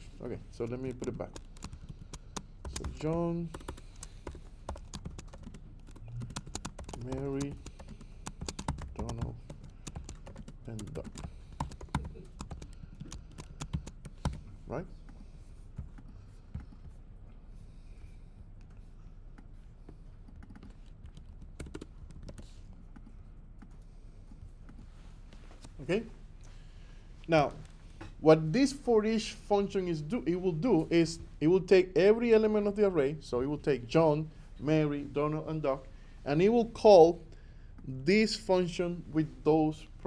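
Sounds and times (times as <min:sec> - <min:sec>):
computer keyboard typing: 0:00.6 - 0:14.5, 0:20.2 - 0:23.7.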